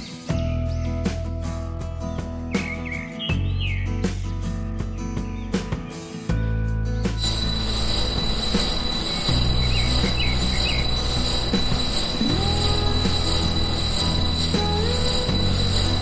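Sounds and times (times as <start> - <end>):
background music chords: 0.0 - 16.0.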